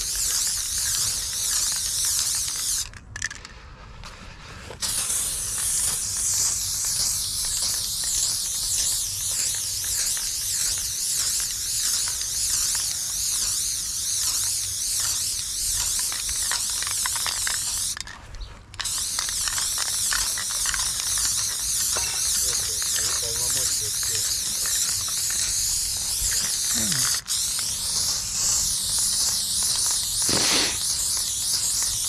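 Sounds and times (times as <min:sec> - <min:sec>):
spray can hissing: 0:00.0 - 0:03.4, 0:04.8 - 0:18.1, 0:18.8 - 0:32.0.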